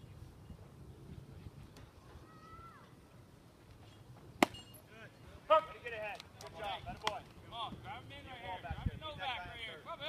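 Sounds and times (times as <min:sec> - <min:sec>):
baseball striking bat: 0:04.4 - 0:04.8.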